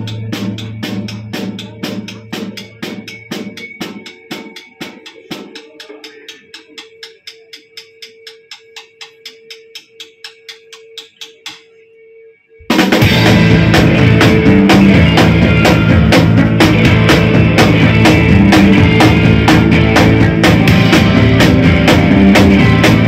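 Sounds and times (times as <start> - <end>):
bass and guitar: 0.0 - 3.7, 13.0 - 23.0
drum kit beat: 0.0 - 11.7, 12.7 - 23.0.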